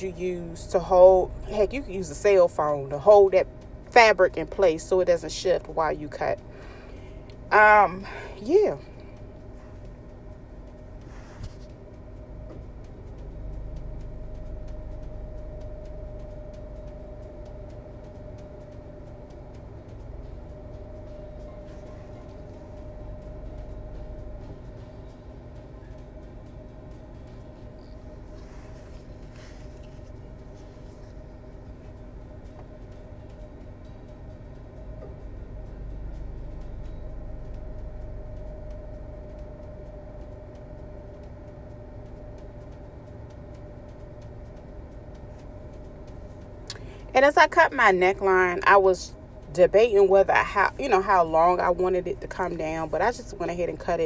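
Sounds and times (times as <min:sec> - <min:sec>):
mechanical hum: 0:00.0 - 0:54.0.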